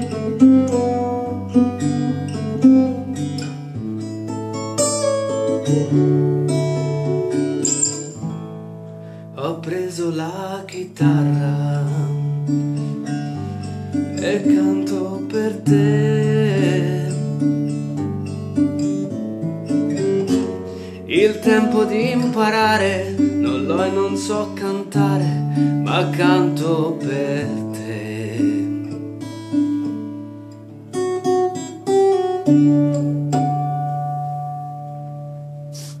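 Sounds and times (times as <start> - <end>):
acoustic guitar plucking chords: 0.0 - 36.0.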